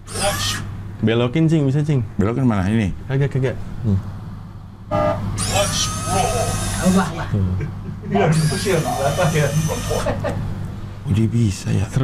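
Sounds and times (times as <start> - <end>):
toy truck electric motor whine: 0.1 - 0.7, 5.0 - 7.2, 8.2 - 10.2.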